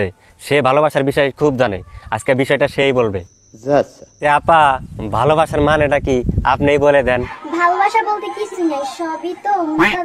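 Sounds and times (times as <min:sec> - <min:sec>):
man speaking: 0:00.0 - 0:07.4
high-pitched insect call: 0:03.1 - 0:04.5.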